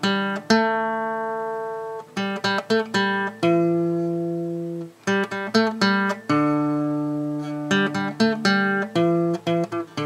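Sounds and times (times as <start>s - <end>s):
acoustic guitar chords plucked: 0.0s - 10.0s.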